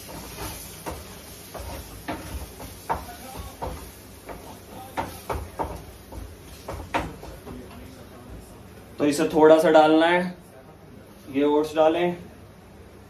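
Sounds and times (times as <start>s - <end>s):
steady hiss: 0.0s - 9.8s.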